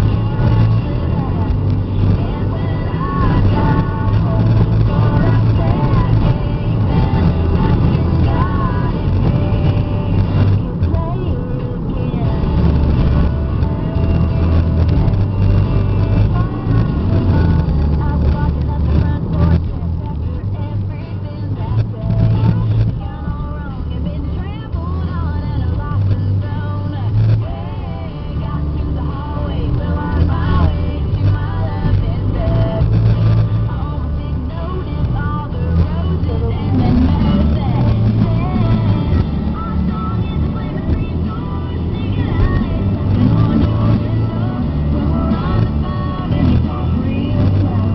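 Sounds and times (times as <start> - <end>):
car road and engine rumble: 0.0 - 47.9.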